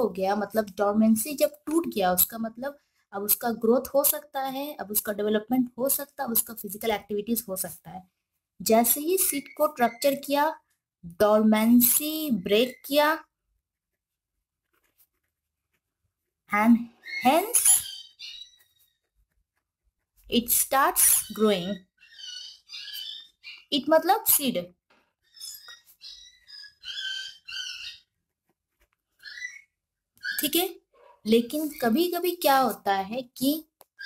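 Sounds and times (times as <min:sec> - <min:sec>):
person speaking: 0:00.0 - 0:13.3, 0:16.5 - 0:17.9, 0:20.2 - 0:21.8, 0:30.2 - 0:33.7
pen scratching on paper: 0:13.5 - 0:16.5, 0:17.2 - 0:21.8, 0:25.6 - 0:29.6
ballpoint pen writing on paper: 0:13.9 - 0:16.3, 0:28.3 - 0:29.5.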